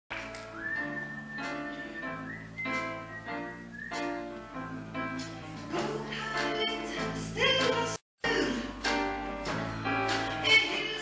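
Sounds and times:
rock band chords: 0:08.5 - 0:11.0.

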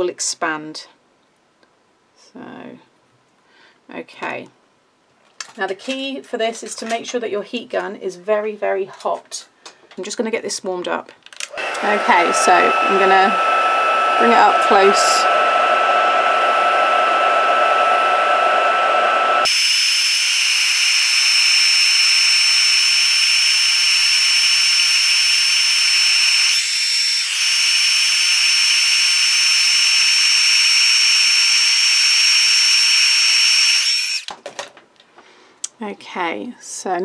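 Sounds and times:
heat gun whining: 0:11.4 - 0:34.4.

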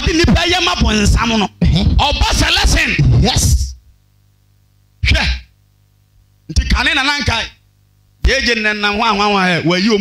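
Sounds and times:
man speaking into microphone: 0:00.0 - 0:03.8, 0:06.5 - 0:07.6, 0:08.2 - 0:10.0
faint low hum: 0:00.0 - 0:10.0.

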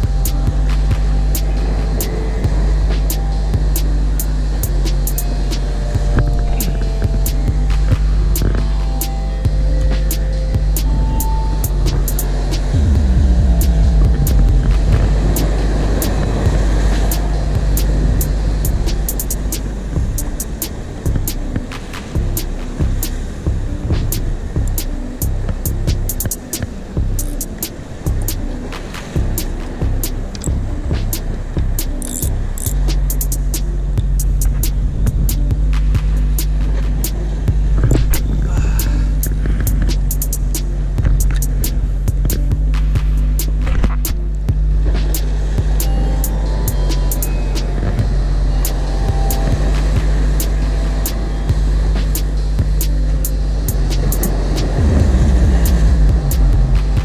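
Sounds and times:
boat motor droning: 0:00.0 - 0:57.0
water noise: 0:00.0 - 0:57.0
wind rumbling on microphone: 0:00.0 - 0:57.0.

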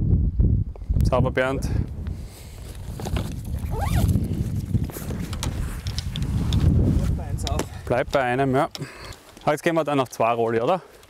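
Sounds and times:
wind rumble on microphone: 0:00.0 - 0:08.6.

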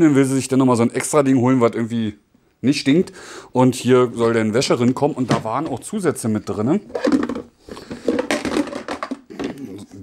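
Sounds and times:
plastic containers rustling and knocking: 0:04.1 - 0:10.0.

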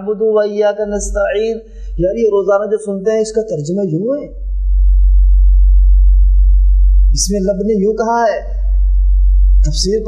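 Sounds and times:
deep electrical mains hum: 0:00.0 - 0:10.0.

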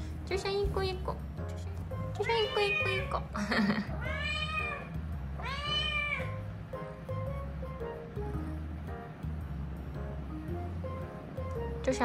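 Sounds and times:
background music: 0:00.0 - 0:12.0
kitten meowing: 0:02.2 - 0:03.3, 0:03.9 - 0:06.4.

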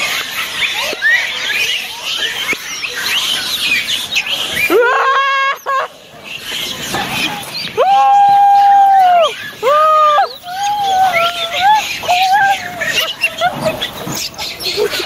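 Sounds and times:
monkeys chirping and squealing: 0:00.0 - 0:15.0.

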